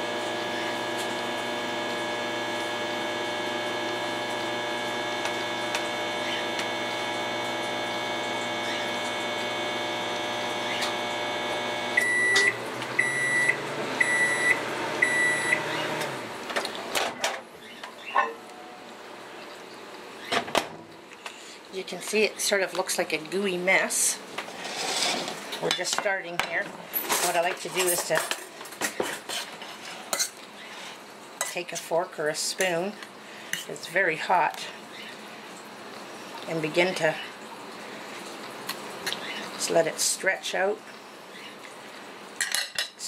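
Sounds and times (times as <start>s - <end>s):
microwave beeps: 0.0s - 16.1s
microwave oven humming: 0.0s - 21.1s.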